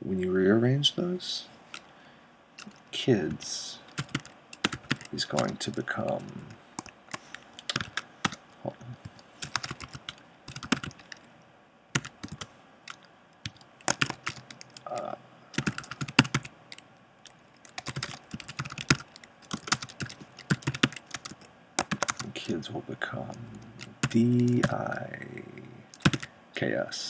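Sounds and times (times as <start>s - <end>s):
computer keyboard typing: 2.6s - 8.4s, 9.0s - 11.3s, 12.0s - 22.4s, 23.2s - 26.3s.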